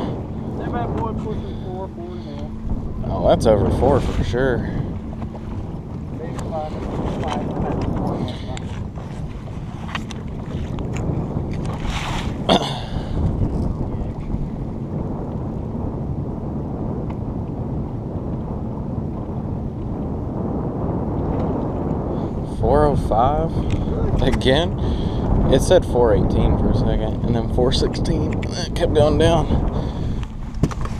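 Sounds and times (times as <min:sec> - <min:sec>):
wind buffeting microphone: 0:00.0 - 0:30.9.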